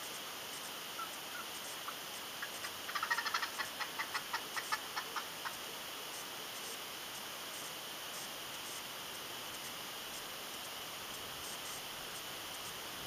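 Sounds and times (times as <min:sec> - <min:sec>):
steady outdoor hiss: 0:00.0 - 0:13.0.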